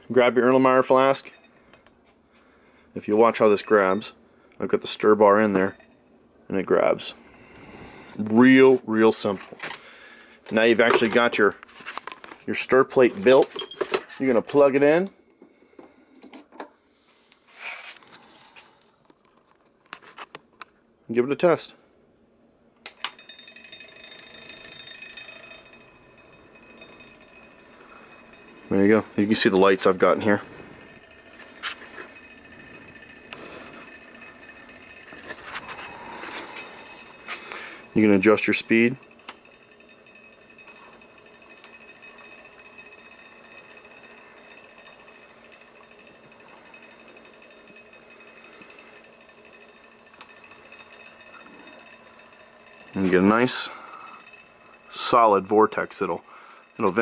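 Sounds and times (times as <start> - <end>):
fan rattling: 0.0 - 14.8, 22.8 - 57.0
cooling fan whirring and whining: 0.0 - 57.0.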